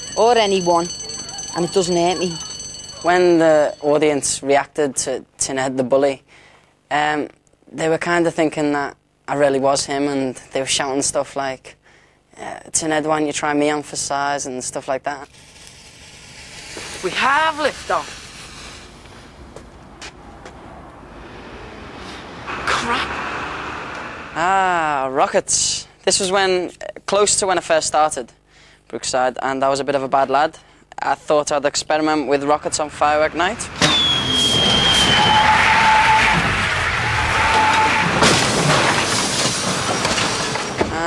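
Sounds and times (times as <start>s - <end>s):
sharp crackles: 15.2s - 20.0s
firework rocket fizzing: 15.3s - 19.6s
van crashing into house: 33.7s - 41.0s.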